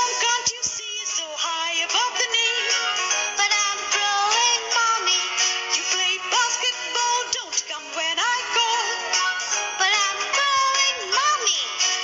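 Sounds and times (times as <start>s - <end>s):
instrumental backing music: 0.0s - 12.0s.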